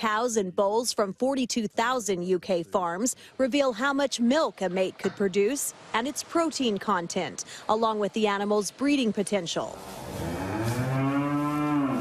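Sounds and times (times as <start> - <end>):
cow mooing: 10.0 - 12.0.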